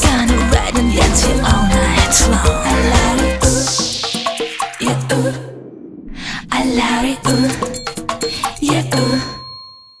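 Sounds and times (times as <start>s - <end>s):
song ending: 0.1s - 4.9s
bright bell dinging: 9.0s - 10.0s.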